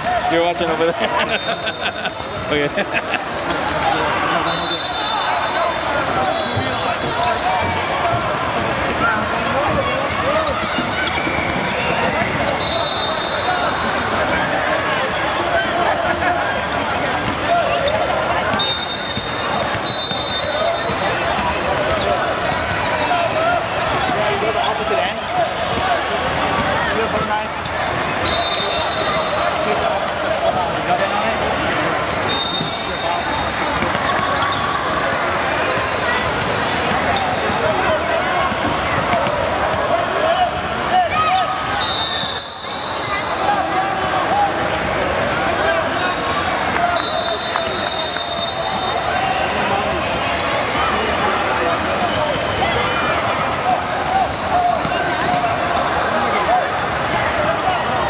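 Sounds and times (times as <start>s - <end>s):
voices of players and spectators: 0.0s - 58.0s.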